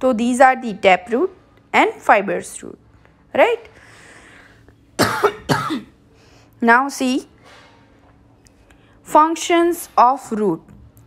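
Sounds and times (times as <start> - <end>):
woman coughing: 5.0 - 6.0.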